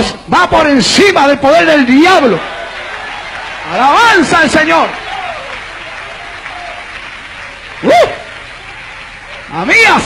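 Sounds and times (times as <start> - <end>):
congregation applauding: 1.5 - 10.0.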